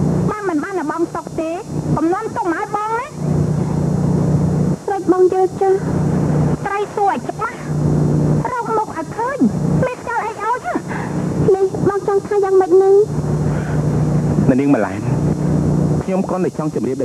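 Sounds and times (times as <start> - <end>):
low hum: 0.0 - 16.1
women speaking: 0.3 - 3.2, 4.9 - 5.9, 6.6 - 7.7, 8.4 - 13.2.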